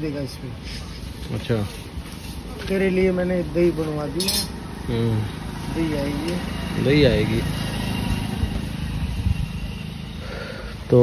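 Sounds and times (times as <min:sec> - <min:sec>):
motorcycle engine passing: 0:01.9 - 0:11.0.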